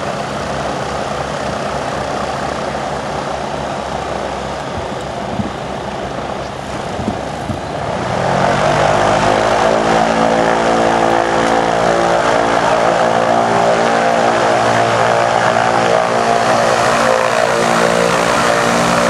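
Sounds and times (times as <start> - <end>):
blimp propeller engines running: 0.0 - 19.0.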